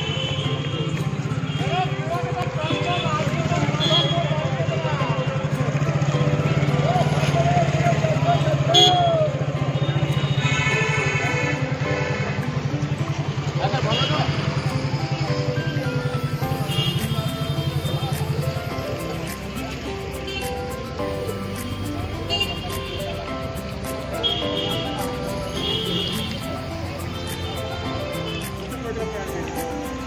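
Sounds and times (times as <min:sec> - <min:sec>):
background music: 0:00.0 - 0:30.0
people's voices: 0:00.8 - 0:10.1, 0:11.1 - 0:30.0.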